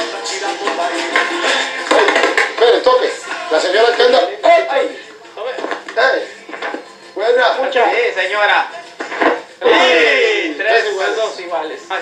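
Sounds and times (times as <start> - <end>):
television background music: 0.0 - 12.0.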